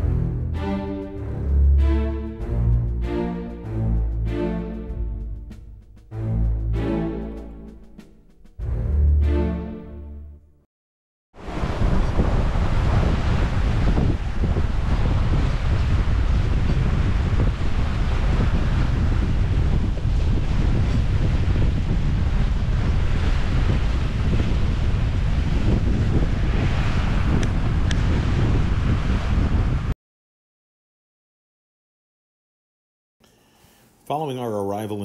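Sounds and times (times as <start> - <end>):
water rushing along a hull: 11.4 - 29.9
wind buffeting microphone: 11.4 - 30.0.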